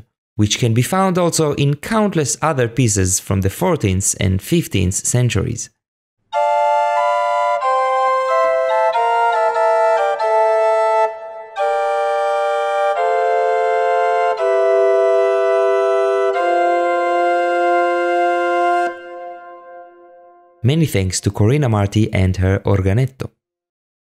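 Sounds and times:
small pipe organ playing: 6.4 - 20.6.

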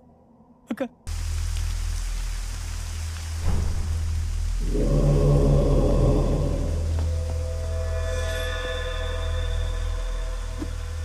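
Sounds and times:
deep low rumble: 1.1 - 11.0
heavy rain hiss: 1.1 - 11.0.

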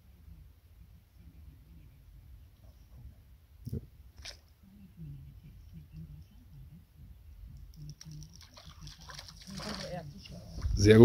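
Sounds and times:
eel splashing at water surface: 7.8 - 10.3.

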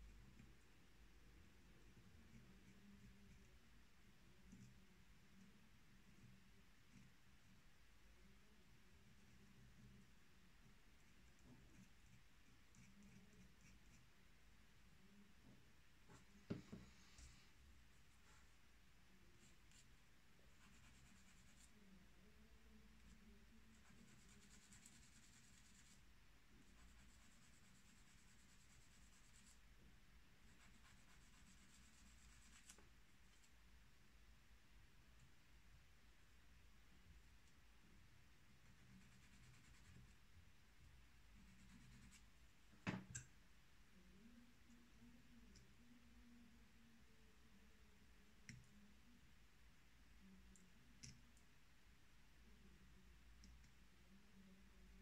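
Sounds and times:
pen nib scratching on paper: 1.8 - 3.6, 4.2 - 7.5, 10.7 - 14.2, 19.4 - 21.8, 23.0 - 29.6, 30.4 - 33.5, 38.6 - 40.2, 41.4 - 42.3.

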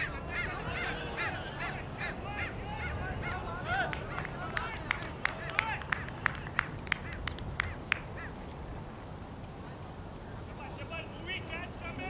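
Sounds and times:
person clapping hands: 3.9 - 8.0.

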